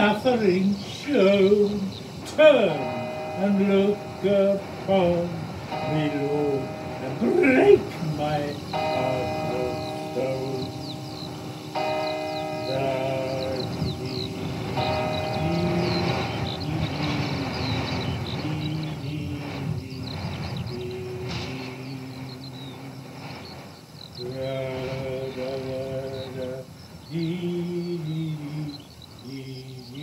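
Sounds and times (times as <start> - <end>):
church bells ringing: 0.0 - 26.6
distant voices: 0.0 - 30.0
high chirps: 0.0 - 30.0.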